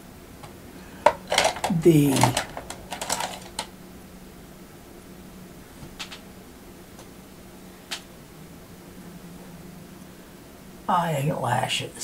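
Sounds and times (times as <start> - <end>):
faint steady hum: 0.0 - 12.0
small objects clicking and rattling: 1.0 - 3.7.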